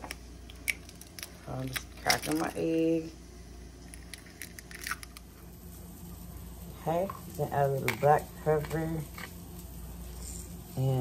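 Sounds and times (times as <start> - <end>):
egg shell cracking: 0.0 - 2.6, 3.8 - 5.4
steady low hum: 0.0 - 11.0.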